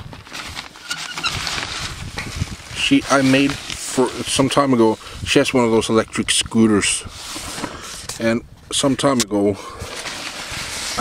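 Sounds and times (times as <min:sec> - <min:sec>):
jacket rustling on microphone: 0:00.0 - 0:05.4, 0:09.8 - 0:11.0.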